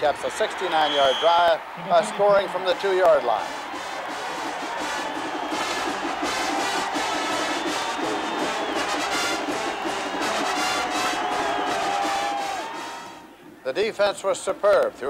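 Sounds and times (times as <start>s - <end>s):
crowd cheering: 0.0s - 13.6s
marching band playing: 1.0s - 13.4s.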